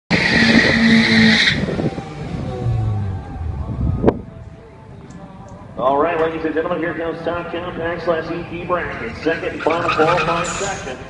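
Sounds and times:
tyres squealing loudly: 0.1s - 1.8s, 9.6s - 10.8s
car engine running: 0.1s - 4.4s.

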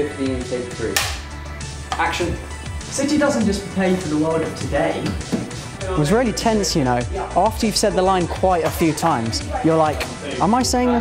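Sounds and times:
background music: 0.0s - 11.0s
clapperboard snapping shut: 1.0s - 1.2s.

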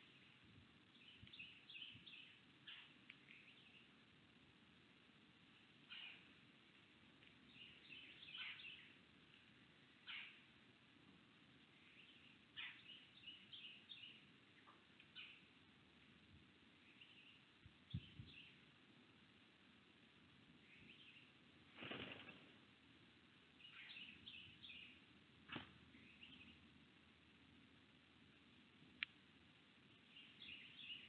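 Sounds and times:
songbird calls: 0.9s - 4.0s, 5.8s - 6.4s, 7.4s - 9.0s, 10.0s - 10.5s, 11.7s - 15.6s, 16.7s - 18.7s, 20.6s - 21.4s, 23.5s - 25.0s, 25.9s - 26.7s, 29.9s - 31.0s
bird twittering: 5.9s - 6.3s, 7.5s - 8.9s, 10.0s - 10.4s.

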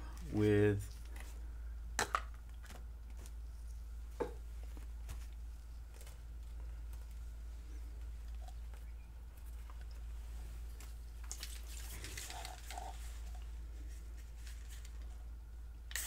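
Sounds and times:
low hum: 0.0s - 15.9s.

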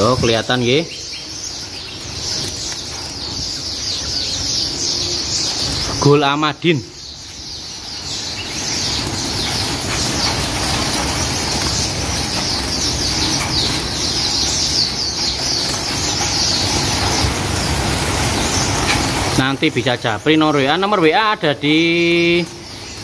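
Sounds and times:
finches chirping: 0.0s - 23.0s
wings fluttering: 7.5s - 20.0s.

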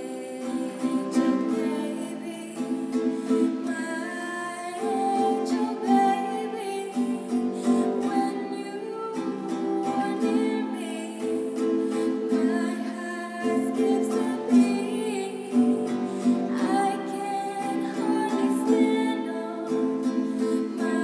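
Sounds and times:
person singing: 0.0s - 21.0s
strummed acoustic guitar: 0.0s - 21.0s.

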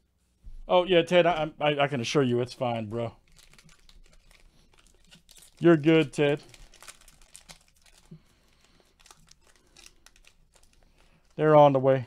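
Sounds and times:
foil pack crinkling: 2.7s - 12.0s.

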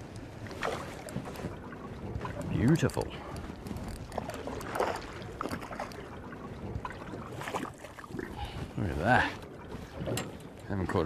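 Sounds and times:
light wind: 0.0s - 11.0s
water lapping against boat hull: 0.0s - 11.0s.

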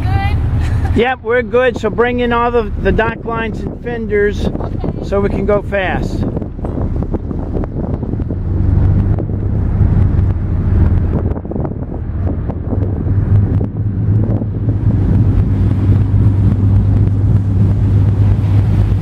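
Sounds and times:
boat engines droning: 0.0s - 19.0s
wind buffeting microphone: 0.0s - 19.0s.

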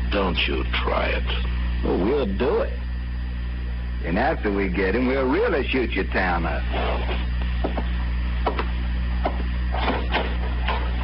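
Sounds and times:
low recording hum: 0.0s - 11.0s.

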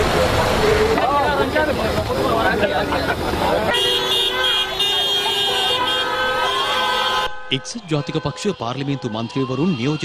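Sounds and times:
voices shouting: 3.6s - 7.3s
vehicle horn blast: 3.7s - 9.2s.

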